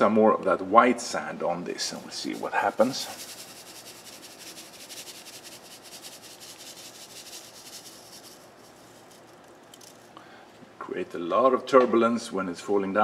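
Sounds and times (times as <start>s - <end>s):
sand pouring into water hiss: 2.0s - 9.4s.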